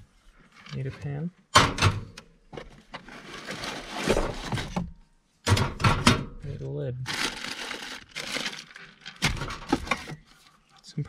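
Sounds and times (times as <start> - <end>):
packaging crinkling and rustling: 3.0 - 4.8, 7.0 - 10.6.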